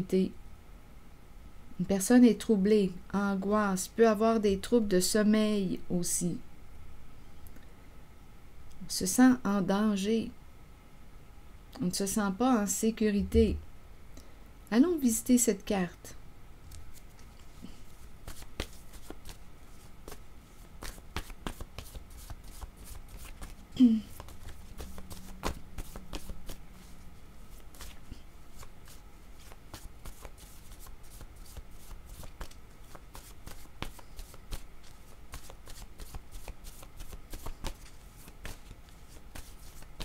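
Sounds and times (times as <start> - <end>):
cards being shuffled: 16.7 - 40.0.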